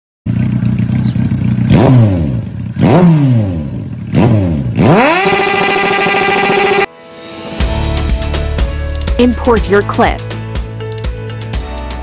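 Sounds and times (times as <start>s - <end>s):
engine revving with whoosh: 0.3s - 6.9s
vehicle engine humming: 0.3s - 6.9s.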